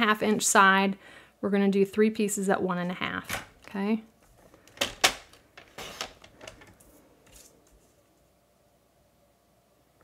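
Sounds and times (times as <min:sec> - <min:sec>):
paper handling: 0:05.7 - 0:08.0.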